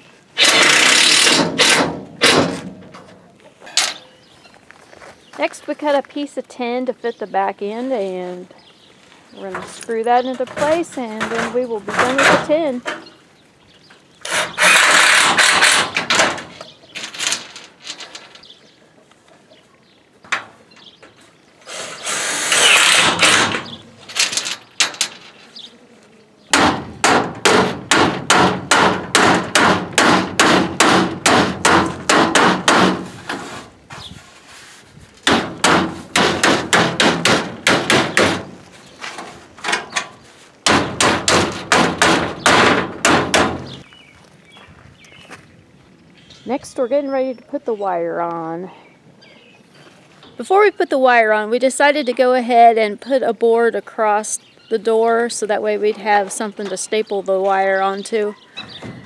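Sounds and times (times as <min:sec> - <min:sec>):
cordless drill driving screws: 0:00.4 - 0:01.8, 0:14.2 - 0:15.9, 0:21.7 - 0:23.6.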